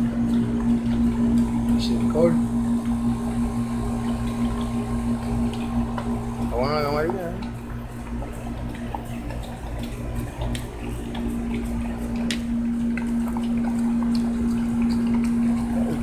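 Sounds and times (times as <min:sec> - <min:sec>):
low mechanical hum: 0:00.0 - 0:16.0.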